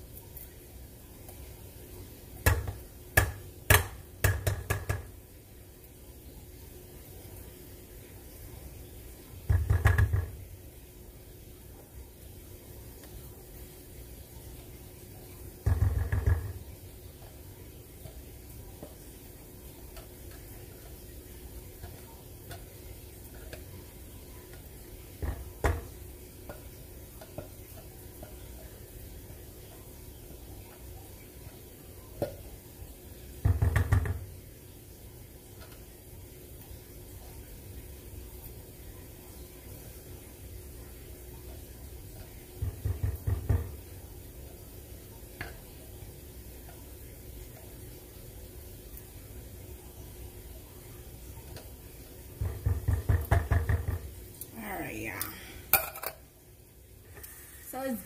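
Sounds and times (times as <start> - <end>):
rapid knocking on saucepan: 2.4 - 5.2, 9.5 - 10.4, 15.6 - 16.7, 25.1 - 27.6, 33.4 - 34.4, 42.5 - 43.8, 52.4 - 54.2.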